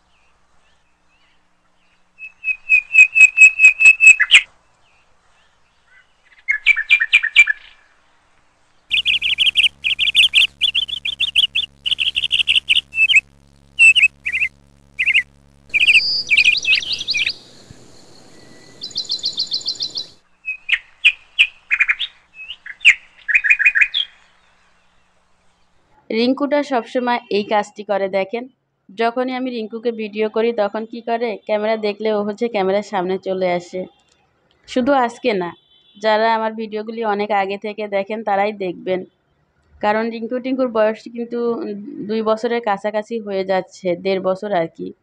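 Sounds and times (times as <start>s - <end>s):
faint steady hum: 7.8s - 22.8s
caged birds chirping: 8.9s - 24.2s.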